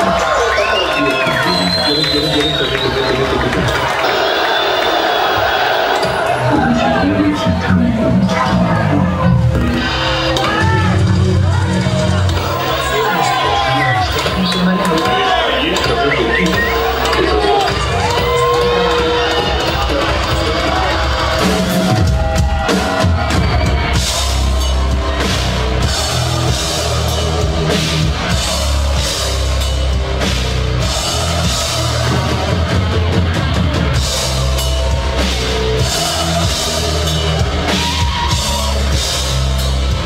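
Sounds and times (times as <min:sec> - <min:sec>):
heavy rock band playing: 0:00.0 - 0:40.0.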